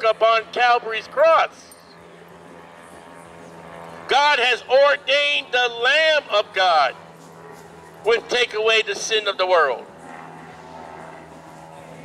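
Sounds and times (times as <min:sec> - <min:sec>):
faint engine drone: 0:00.0 - 0:12.0.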